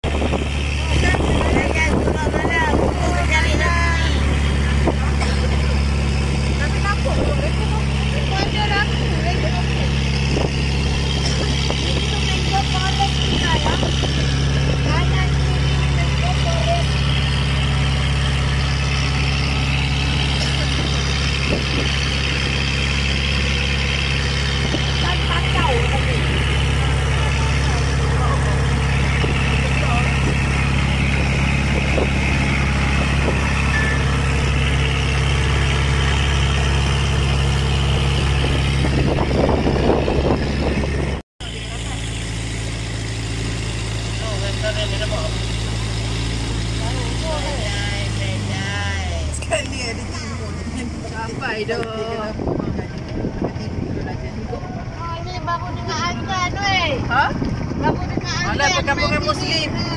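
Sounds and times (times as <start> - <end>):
boat engine humming: 0.0 - 59.9
people chatting: 0.8 - 5.7, 6.5 - 10.0, 11.3 - 17.0, 25.0 - 30.4, 41.4 - 42.2, 44.0 - 45.5, 46.7 - 59.9.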